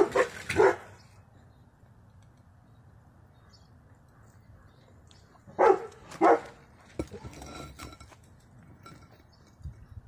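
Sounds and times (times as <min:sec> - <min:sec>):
dog barking: 0:00.0 - 0:00.9, 0:05.6 - 0:06.6.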